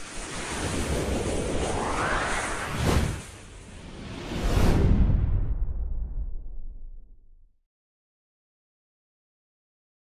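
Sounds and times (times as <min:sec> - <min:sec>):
rising whoosh: 0:00.0 - 0:07.0.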